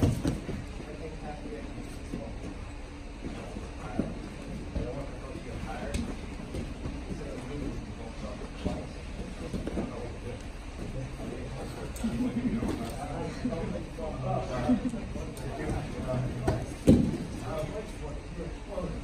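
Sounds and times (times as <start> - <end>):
soft thumps on mats: 0.0 - 0.8, 16.4 - 17.4
faint indistinct voices: 0.0 - 19.0.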